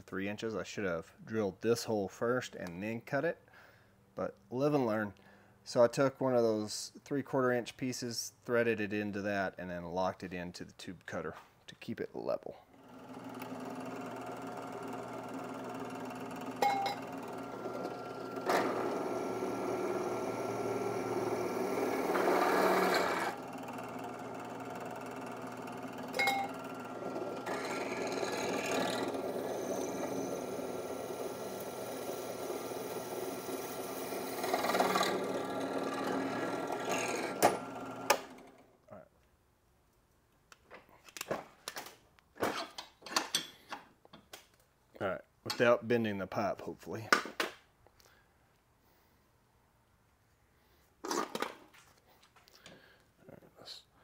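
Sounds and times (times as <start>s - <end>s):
drill press motor humming: 12.7s - 38.7s
drill bit cutting metal: 12.9s - 38.5s.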